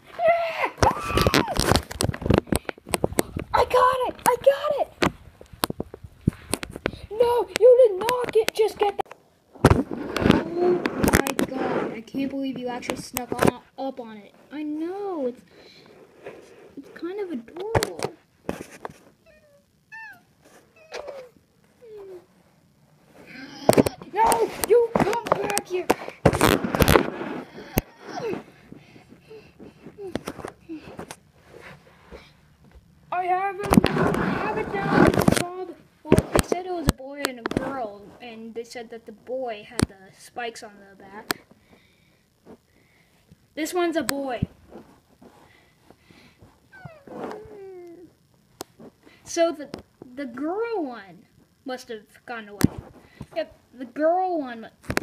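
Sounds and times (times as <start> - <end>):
cat meowing: 19.2 - 21.3.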